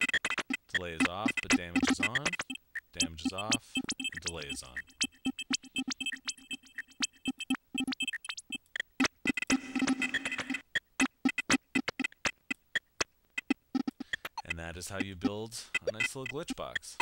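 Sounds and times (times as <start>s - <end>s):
glitchy electronic drum pattern: 0.0s - 17.0s.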